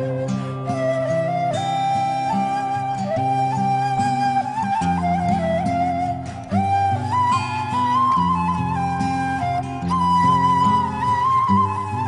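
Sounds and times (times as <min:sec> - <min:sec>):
slow flute melody: 0:00.0 - 0:12.0.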